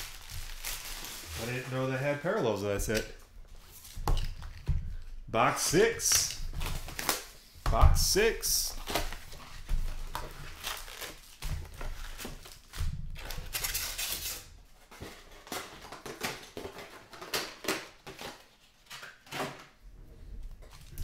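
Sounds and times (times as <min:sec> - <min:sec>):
rustling and crinkling: 0:00.0 - 0:05.2, 0:06.1 - 0:07.7, 0:08.7 - 0:21.0.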